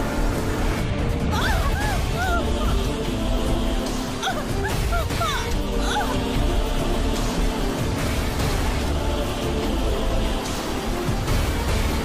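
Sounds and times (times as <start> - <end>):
heavy low rumble: 2.0 - 12.0.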